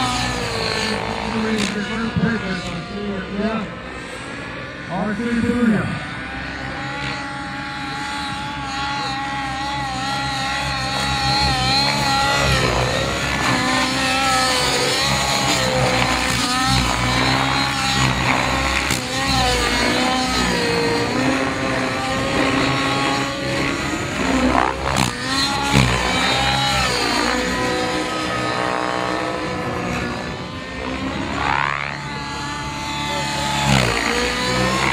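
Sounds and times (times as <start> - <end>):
model helicopter engine and rotor: 0.0 - 34.9.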